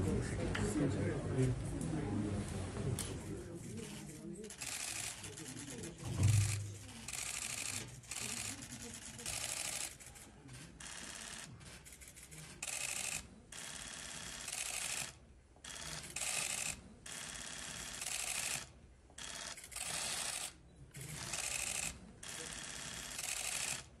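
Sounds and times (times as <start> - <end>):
camera shutter click bursts: 6.4 - 10.0, 10.8 - 17.3, 17.9 - 23.9.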